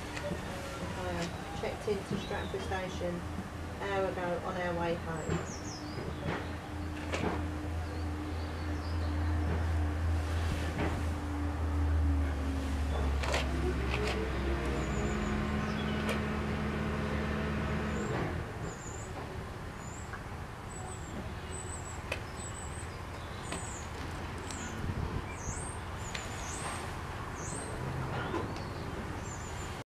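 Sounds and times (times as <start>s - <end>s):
low motor hum: 0.0s - 20.1s.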